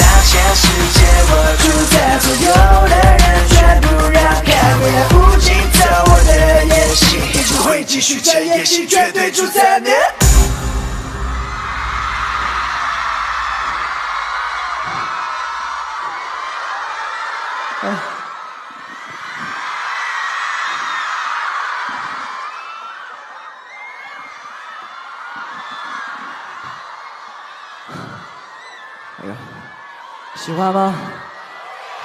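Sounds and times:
crowd screaming and cheering: 0:00.0 - 0:32.0.

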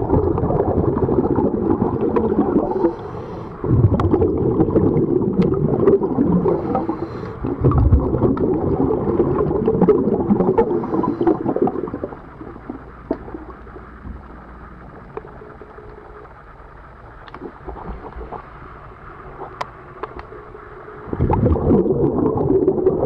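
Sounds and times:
underwater air bubbles rushing: 0:00.0 - 0:16.1, 0:16.7 - 0:20.2, 0:20.9 - 0:23.0
low hiss: 0:00.0 - 0:23.0.

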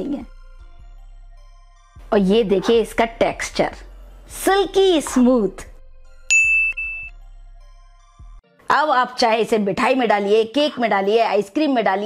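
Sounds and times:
bright high-pitched ding: 0:06.3 - 0:07.1.

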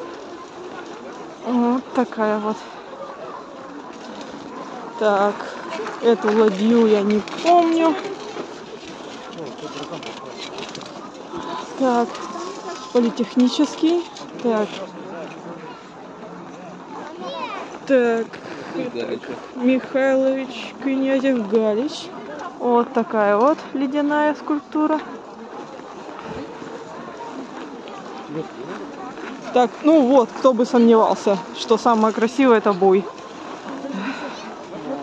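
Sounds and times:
faint indistinct voices: 0:00.0 - 0:35.0
outdoor background noise: 0:00.0 - 0:35.0.

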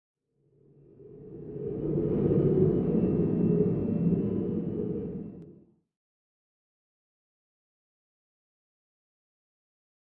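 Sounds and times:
low rumbling swell: 0:01.0 - 0:05.4.

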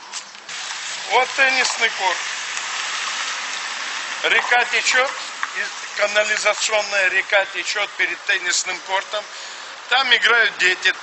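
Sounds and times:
tyres hissing on wet street: 0:00.1 - 0:11.0.

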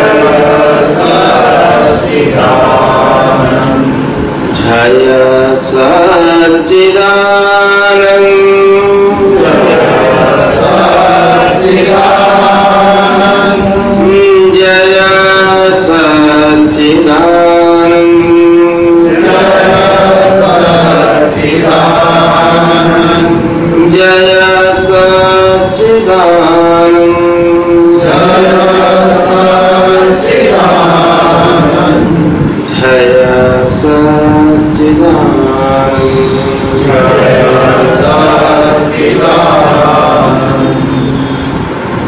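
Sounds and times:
group chanting a prayer: 0:00.0 - 0:41.6.

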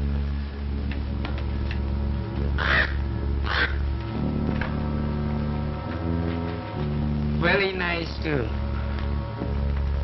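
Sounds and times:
film music with held chords: 0:00.0 - 0:10.0
crow cawing: 0:02.5 - 0:04.0.

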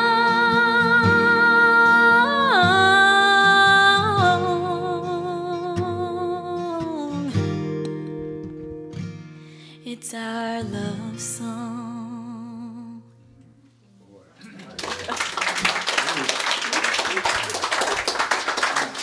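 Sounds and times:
woman singing with vibrato: 0:00.0 - 0:07.4, 0:09.8 - 0:13.1
acoustic guitar: 0:00.0 - 0:14.6.

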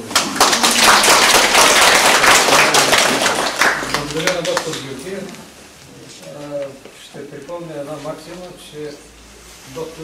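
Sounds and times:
audience applauding: 0:00.0 - 0:05.0.

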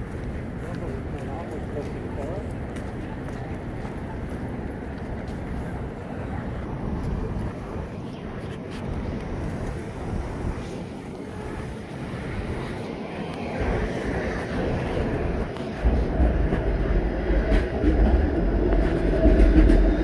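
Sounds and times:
traffic rumble: 0:00.0 - 0:20.0
wind on microphone: 0:03.3 - 0:20.0.

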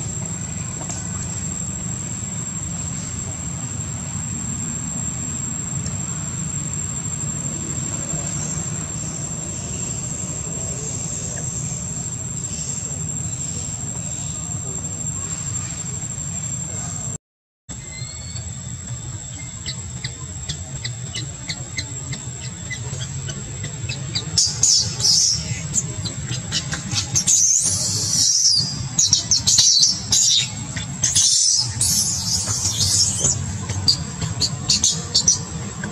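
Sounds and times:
infant monkey squealing: 0:21.0 - 0:35.5.

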